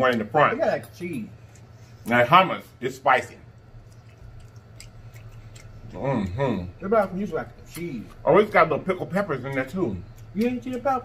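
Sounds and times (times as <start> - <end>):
steady low hum: 0.0 - 11.0
close chewing: 3.5 - 11.0
wet mouth clicks: 3.8 - 5.9.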